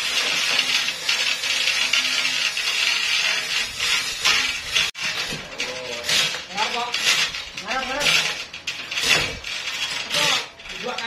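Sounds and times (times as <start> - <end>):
saw cutting log: 0.0 - 11.0.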